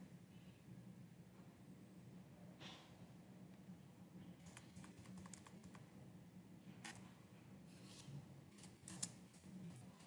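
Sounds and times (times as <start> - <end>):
keyboard keystrokes: 4.4 - 5.8.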